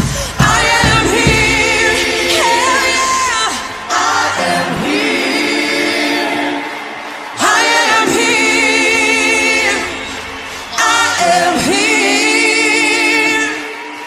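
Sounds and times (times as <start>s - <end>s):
choir singing held notes: 0.0s - 14.0s.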